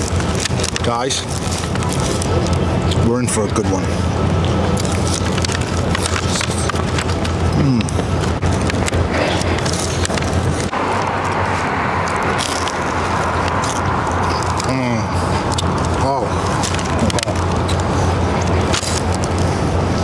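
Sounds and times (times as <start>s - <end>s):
man chewing crisp food: 0.0s - 3.0s, 4.2s - 20.0s
street traffic noise: 0.0s - 20.0s.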